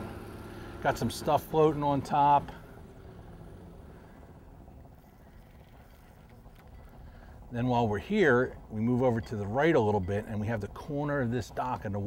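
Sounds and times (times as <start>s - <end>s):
faint low rumble: 0.0s - 12.0s.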